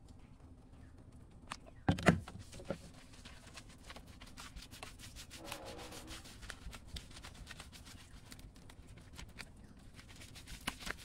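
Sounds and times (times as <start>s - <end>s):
hands scrubbing soapy hide: 2.4s - 11.0s.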